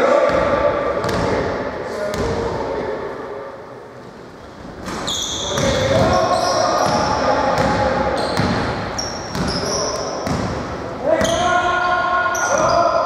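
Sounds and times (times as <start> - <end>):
players' voices: 0.0 - 13.0
sneakers squeaking on floor: 4.4 - 13.0.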